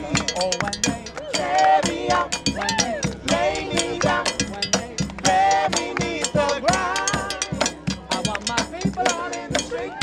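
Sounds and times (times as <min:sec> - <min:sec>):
band melody: 0:00.0 - 0:09.8
cowbell struck with drumstick: 0:00.0 - 0:10.0.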